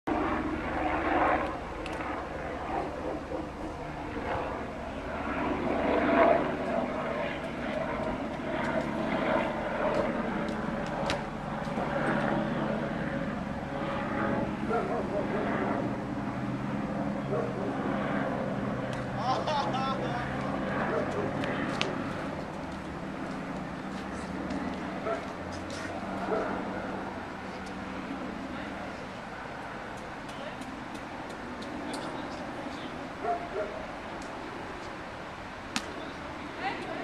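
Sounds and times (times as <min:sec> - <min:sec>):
low engine drone: 0:00.1 - 0:37.0
voices talking: 0:14.5 - 0:16.1, 0:17.0 - 0:22.6.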